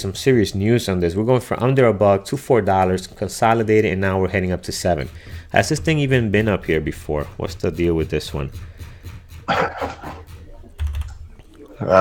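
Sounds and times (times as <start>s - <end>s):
man coughing: 9.5s - 10.2s.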